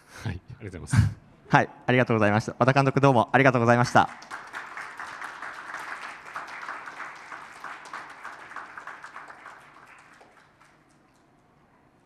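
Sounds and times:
audience applauding: 0:03.8 - 0:11.4.

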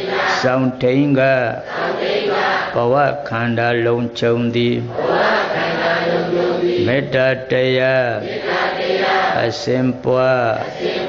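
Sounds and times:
monk leading chant: 0:00.0 - 0:02.0, 0:02.7 - 0:08.6, 0:09.2 - 0:11.0
congregation chanting in unison: 0:00.0 - 0:11.0.

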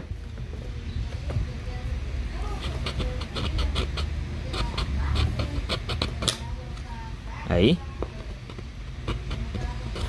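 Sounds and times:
file scraping plastic: 0:02.5 - 0:06.4, 0:08.4 - 0:10.0.

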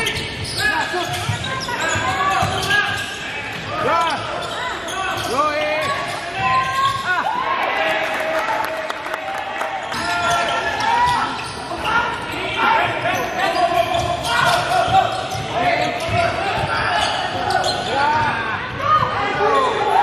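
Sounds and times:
sneakers squeaking: 0:00.0 - 0:07.5, 0:09.8 - 0:20.0.

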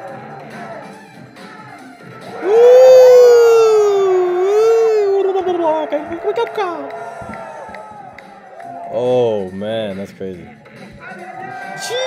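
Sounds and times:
man's drawn-out ooh of amazement: 0:02.4 - 0:05.4.

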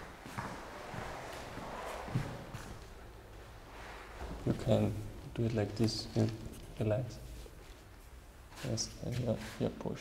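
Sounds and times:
footsteps on concrete floor: 0:00.0 - 0:03.0.

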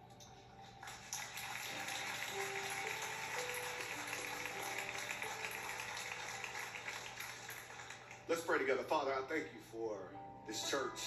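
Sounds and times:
congregation applauding: 0:00.6 - 0:08.7.

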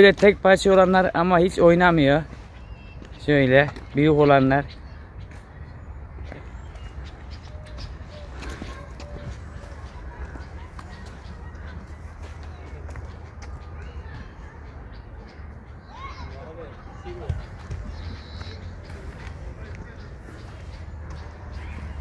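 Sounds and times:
bird chirp: 0:00.8 - 0:22.0
faint distant voices: 0:03.2 - 0:22.0.

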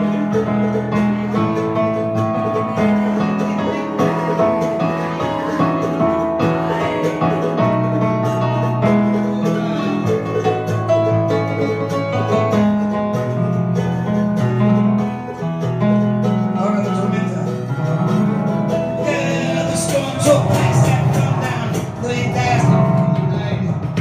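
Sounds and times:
digital piano playing chords: 0:00.0 - 0:24.0
strummed acoustic string instrument: 0:00.0 - 0:24.0.

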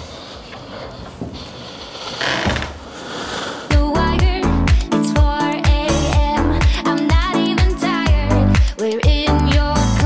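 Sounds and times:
door swinging open: 0:02.2 - 0:02.8.

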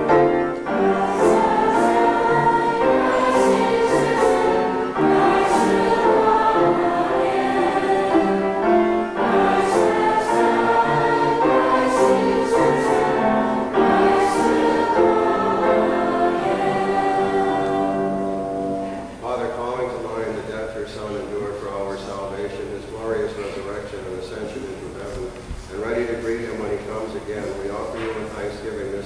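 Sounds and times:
choir singing: 0:00.0 - 0:19.1.

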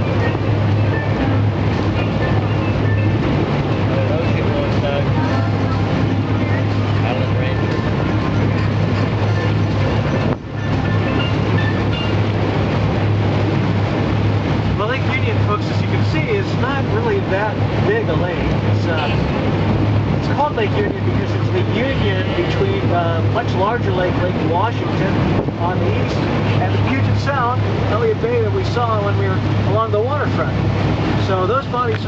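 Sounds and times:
low engine drone: 0:00.0 - 0:32.0
water noise: 0:00.0 - 0:32.0
wind: 0:00.0 - 0:32.0.

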